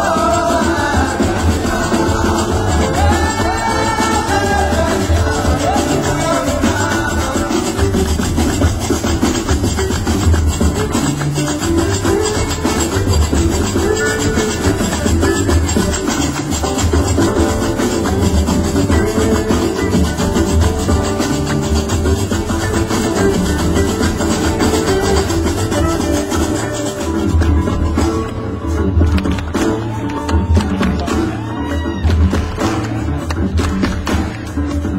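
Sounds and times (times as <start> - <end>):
acoustic guitar: 0.0 - 34.9.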